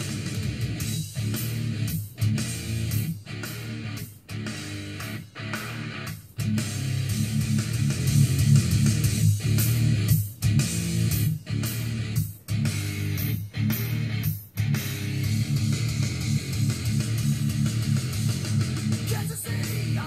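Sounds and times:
rock music from car speaker: 0.0s - 20.0s.

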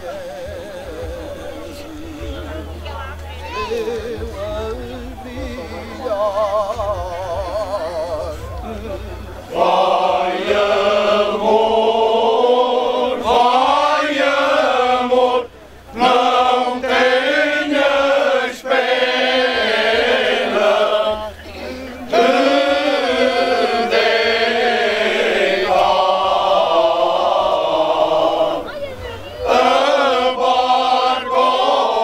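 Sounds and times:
male choir singing unaccompanied: 0.0s - 32.0s.

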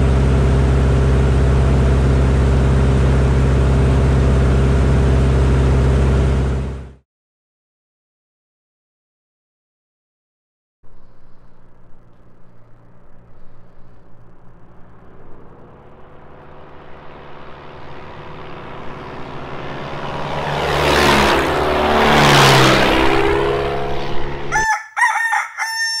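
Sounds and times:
propeller plane fly-by: 0.0s - 7.0s, 10.9s - 26.0s
rooster crowing: 24.5s - 26.0s.

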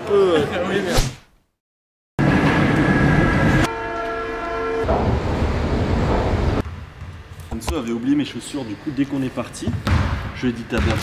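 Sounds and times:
steady horn-like tone: 2.8s - 5.4s.

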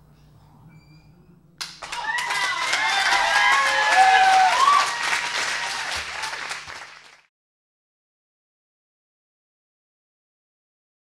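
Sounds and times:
audience applauding: 1.6s - 7.3s
cheering and whoops: 1.8s - 6.8s.

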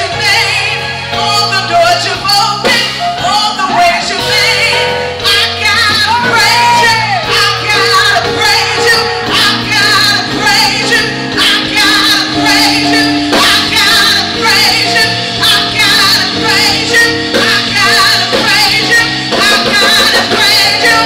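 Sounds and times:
drum kit: 0.0s - 21.0s
keyboard: 0.0s - 21.0s
woman singing into a microphone: 0.0s - 21.0s.

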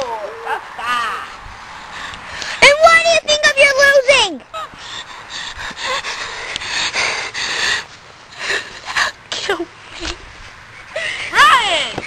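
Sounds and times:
quieter voices: 0.0s - 12.0s
boy yelling: 2.6s - 4.7s, 11.3s - 12.0s.

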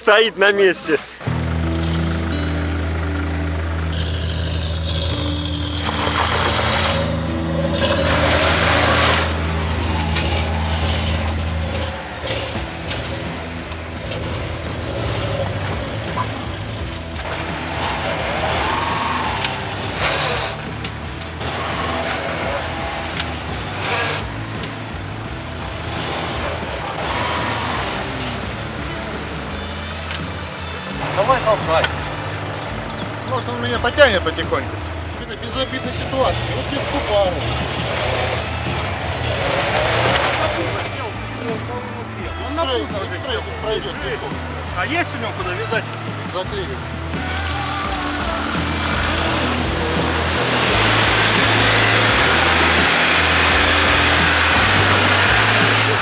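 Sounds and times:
background music with bass line: 0.0s - 56.0s
car engine revving: 0.0s - 56.0s
voices: 0.0s - 56.0s.

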